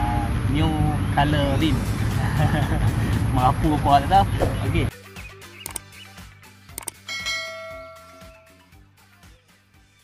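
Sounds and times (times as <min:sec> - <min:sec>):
soft background music: 0:01.5 - 0:10.0
double mouse click: 0:05.6 - 0:05.9, 0:06.8 - 0:07.0
notification bell chime: 0:07.1 - 0:08.6.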